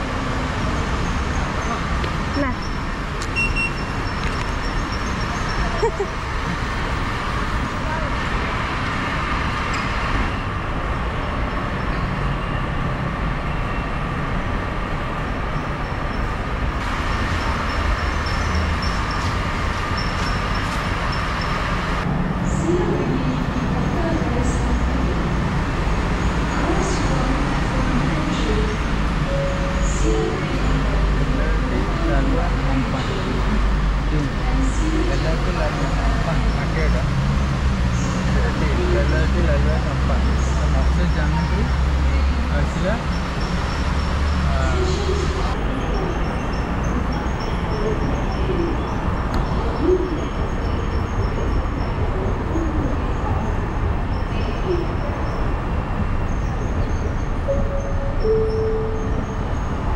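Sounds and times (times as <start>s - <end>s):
low rumble of traffic and machinery: 0.0s - 59.9s
people talking: 0.8s - 2.7s, 5.2s - 6.2s, 7.7s - 8.5s, 22.5s - 25.5s, 26.4s - 37.1s, 38.0s - 43.1s, 44.4s - 55.5s
short electronic beep: 57.5s - 59.6s.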